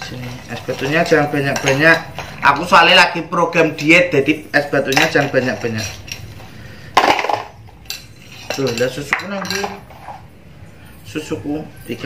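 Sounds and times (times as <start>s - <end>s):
metal spoon scraping in ice bowl: 0.0s - 7.0s, 7.7s - 10.3s.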